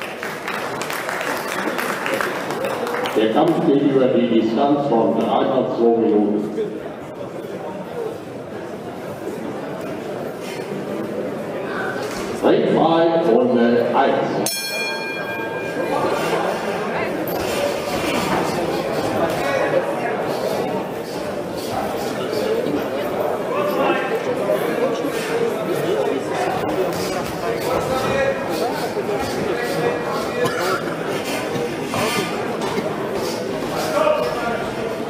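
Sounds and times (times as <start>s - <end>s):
spectators murmuring: 0.4s - 35.0s
boxing ring bell: 14.4s - 16.4s.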